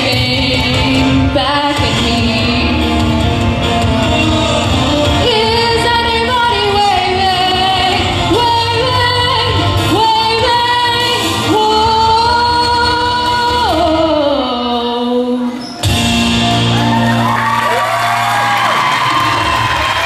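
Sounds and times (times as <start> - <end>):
young woman singing: 0.0 - 2.9, 4.5 - 15.5.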